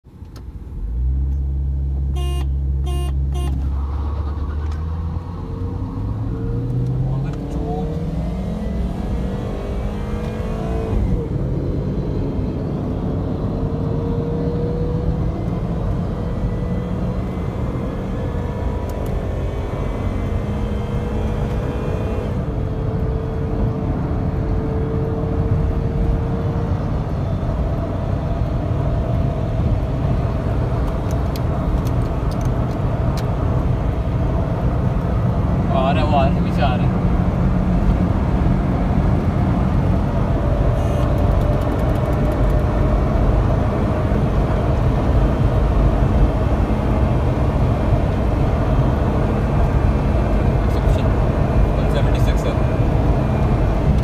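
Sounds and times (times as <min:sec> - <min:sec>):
road and wind noise: 0:00.0 - 0:54.0
car engine accelerating: 0:00.7 - 0:54.0
short beeps: 0:02.2 - 0:03.6.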